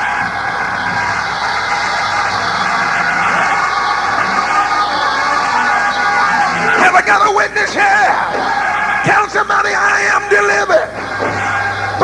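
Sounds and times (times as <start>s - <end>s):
church music: 0.0s - 12.0s
congregation noise: 0.0s - 12.0s.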